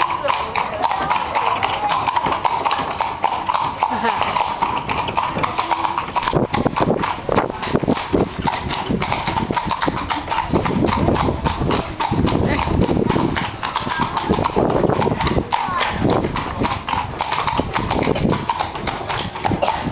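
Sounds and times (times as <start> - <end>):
hooves clip-clopping on cobblestones: 0.0 - 19.9.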